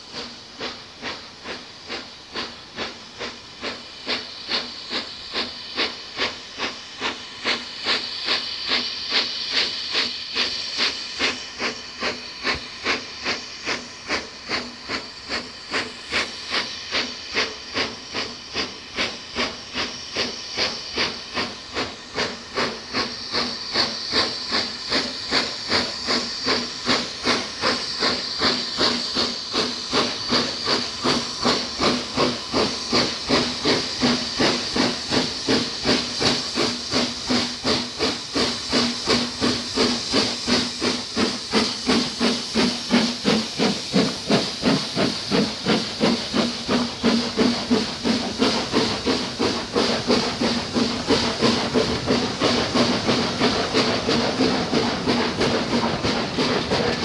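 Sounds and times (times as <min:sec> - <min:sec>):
steam locomotive chuffing: 0:00.0 - 0:57.0.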